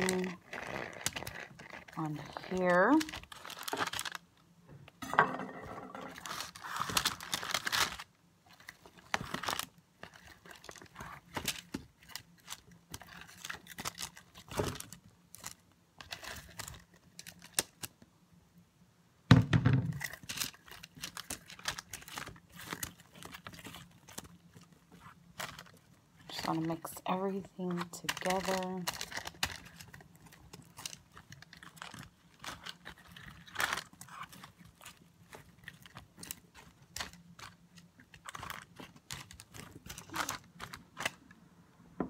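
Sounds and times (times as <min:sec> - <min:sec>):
parchment paper crinkling: 0:00.0 - 0:04.4, 0:05.9 - 0:18.0, 0:19.9 - 0:41.4.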